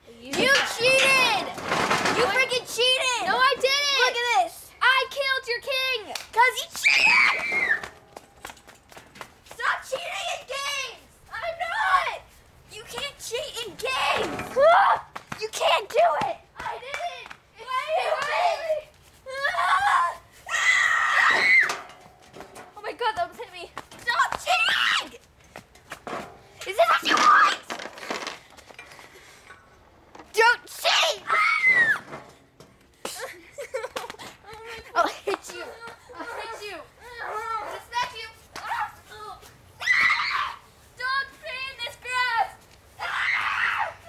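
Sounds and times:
girl shouting: 12.8 - 21.7, 22.9 - 25.2, 34.5 - 44.0
girl screaming: 19.3 - 21.7, 30.9 - 32.1, 39.8 - 40.6, 43.0 - 44.0.

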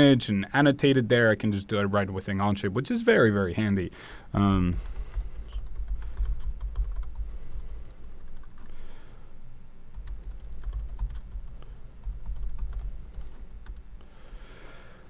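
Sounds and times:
computer keyboard typing: 4.7 - 8.8, 9.9 - 13.8.

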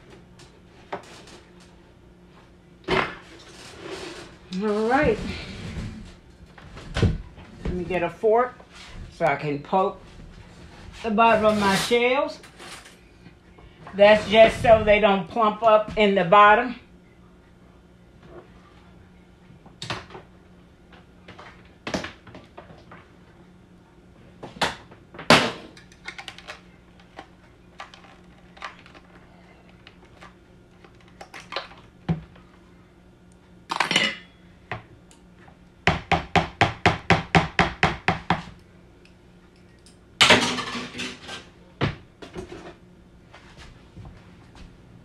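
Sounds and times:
kitchen utensils clattering: 33.7 - 34.3, 40.2 - 41.5.

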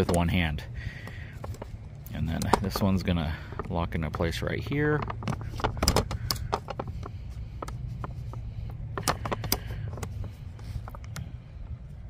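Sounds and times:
low steady rumble: 0.0 - 12.0.

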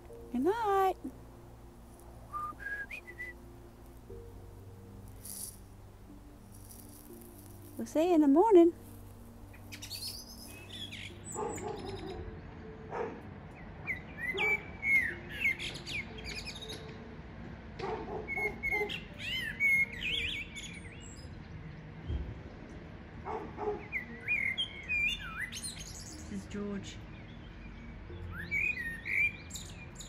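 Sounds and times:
blackbird singing: 2.3 - 3.6, 9.5 - 17.0, 18.2 - 22.2, 23.7 - 30.0.

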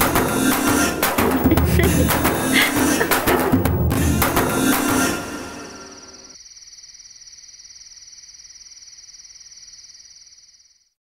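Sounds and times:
music: 0.0 - 6.4
crickets chirping: 1.3 - 11.0.

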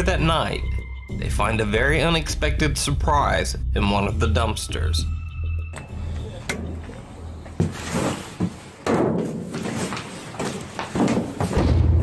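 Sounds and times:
trash rustling in dumpster: 7.4 - 11.9.

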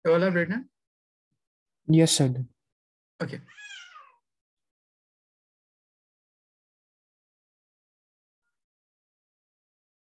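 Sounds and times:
high-pitched animal call: 3.5 - 4.2.

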